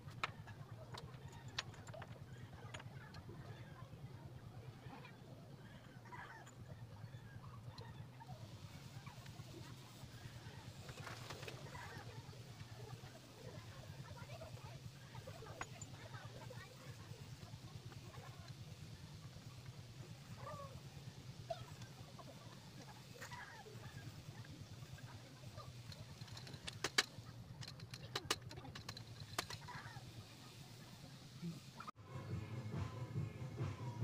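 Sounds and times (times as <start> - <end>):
bicycle parts clicking together: 25.8 - 29.7.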